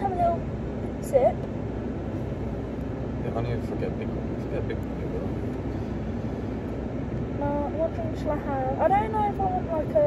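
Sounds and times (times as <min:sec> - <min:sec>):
road and engine rumble in car: 0:00.0 - 0:10.0.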